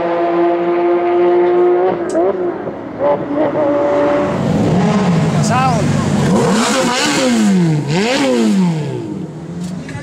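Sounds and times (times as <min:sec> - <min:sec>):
car engine revving: 0:00.0 - 0:10.0.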